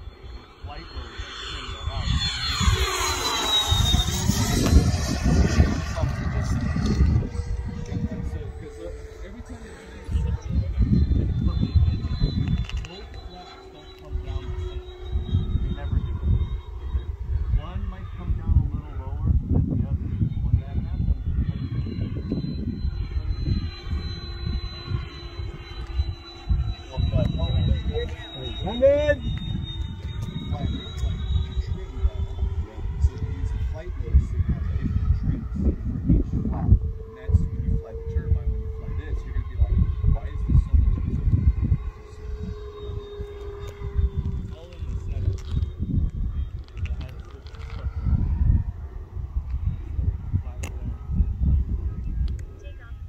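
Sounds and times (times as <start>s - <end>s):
jet fan whine flying past: 0.0s - 53.0s
low rumble: 0.0s - 53.0s
wind buffeting microphone: 0.0s - 53.0s.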